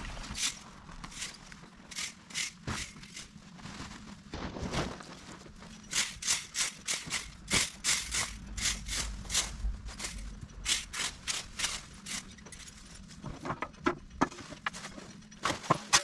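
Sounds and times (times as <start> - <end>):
rake scraping over lawn: 0.0 - 13.4.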